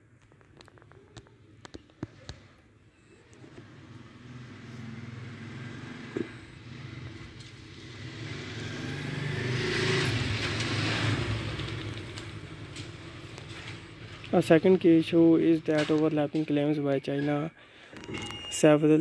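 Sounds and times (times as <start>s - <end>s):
motor vehicle passing by: 3.2s - 15.0s.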